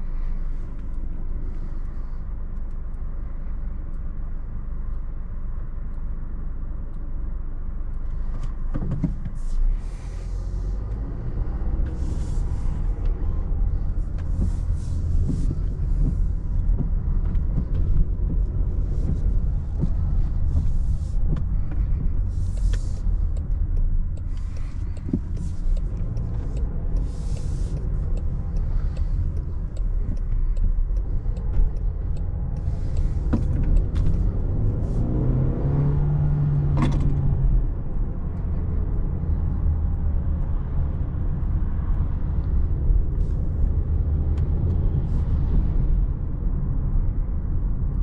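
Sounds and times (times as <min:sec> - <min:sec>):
car engine and road rumble: 0:00.0 - 0:48.0.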